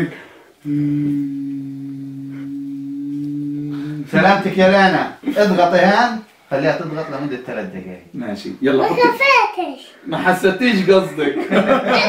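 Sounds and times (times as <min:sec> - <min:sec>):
man's voice holding a low aaah: 0:00.0 - 0:04.6.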